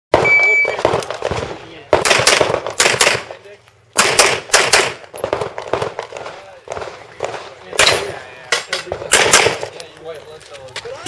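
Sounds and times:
shot timer beep: 0:00.2 - 0:00.8
handgun firing: 0:02.0 - 0:03.3, 0:04.0 - 0:06.1, 0:08.8 - 0:09.7.

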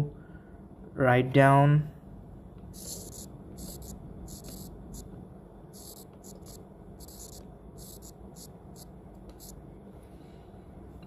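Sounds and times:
faint room hum: 0:00.0 - 0:11.0
soft scratches on touchscreen: 0:02.8 - 0:05.0, 0:05.8 - 0:09.6.

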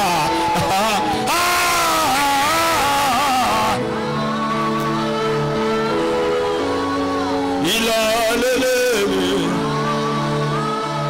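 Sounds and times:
man singing into a microphone: 0:00.0 - 0:03.8, 0:07.5 - 0:09.9
quiet singing: 0:03.4 - 0:11.0.

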